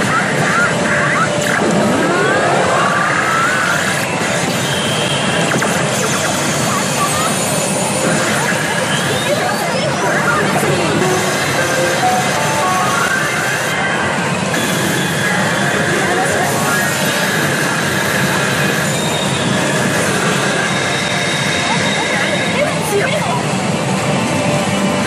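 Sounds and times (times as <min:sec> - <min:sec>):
machine sound effects: 0:00.0 - 0:25.0
pachinko machine music: 0:00.0 - 0:25.0
roar of parlor machines: 0:00.0 - 0:25.0
character voice lines: 0:08.1 - 0:14.1, 0:15.3 - 0:17.4.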